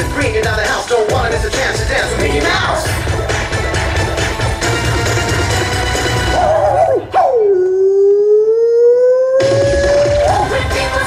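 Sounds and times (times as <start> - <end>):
backing music: 0.0 - 7.6, 9.4 - 11.0.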